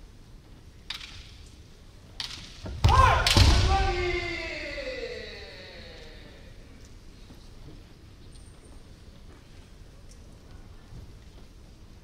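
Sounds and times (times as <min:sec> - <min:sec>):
bamboo swords clacking: 0:02.1 - 0:03.6
loud shout falling in pitch: 0:02.8 - 0:06.6.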